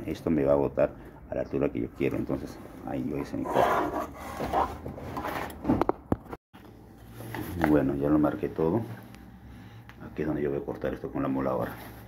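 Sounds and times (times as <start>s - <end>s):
objects knocking and scraping: 3.1s - 6.4s.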